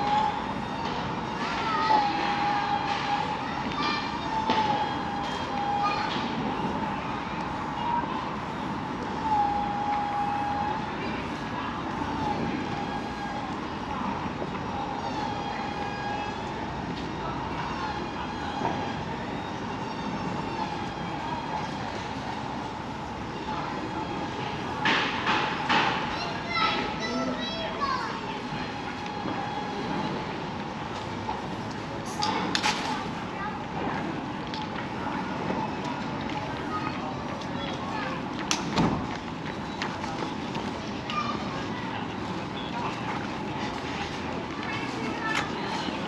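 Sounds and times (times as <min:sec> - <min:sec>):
background street noise: 0:00.0 - 0:46.0
voices of passers-by: 0:00.0 - 0:46.0.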